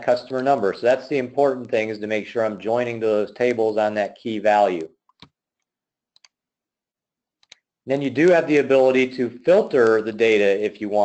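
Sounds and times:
computer mouse clicks: 4.7s - 5.4s, 6.2s - 6.4s, 7.4s - 7.7s.

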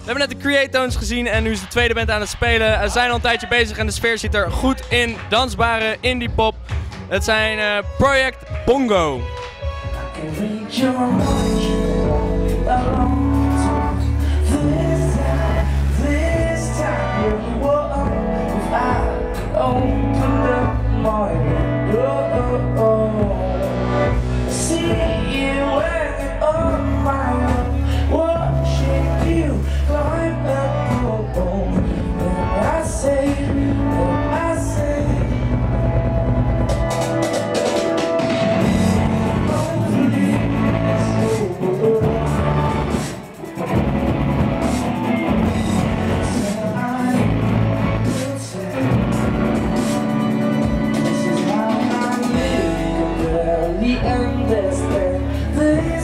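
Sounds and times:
electric guitar: 9.2s - 56.0s
live indie pop band: 9.3s - 56.0s
person singing: 9.9s - 36.0s, 37.2s - 56.0s
sung vocals: 9.9s - 36.9s, 38.2s - 56.0s.

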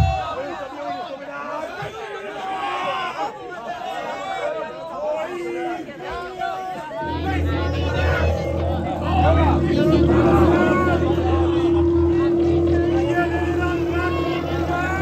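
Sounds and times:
loud crowd chatter: 0.0s - 15.0s
amplified instrument drone: 7.0s - 15.0s.

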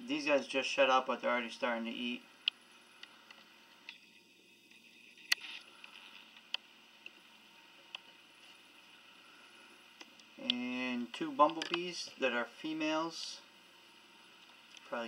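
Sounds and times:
man speaking: 0.0s - 2.2s, 10.4s - 13.5s.

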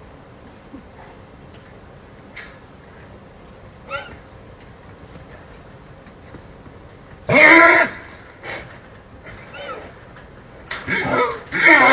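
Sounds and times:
animal call: 7.3s - 8.1s, 10.9s - 11.9s.

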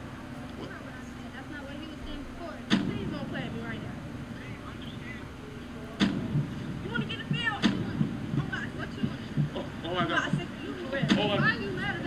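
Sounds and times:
steady low hum: 0.0s - 12.0s
quiet speech: 0.5s - 12.0s
louder talking: 0.6s - 12.0s.

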